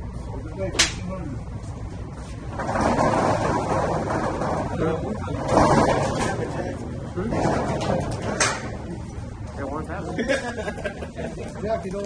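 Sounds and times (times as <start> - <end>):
crowd voices overlapping: 2.9 - 12.0.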